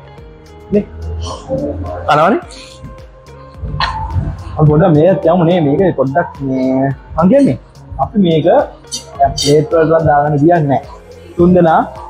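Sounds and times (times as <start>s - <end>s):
music with singing voice: 0.0s - 12.0s.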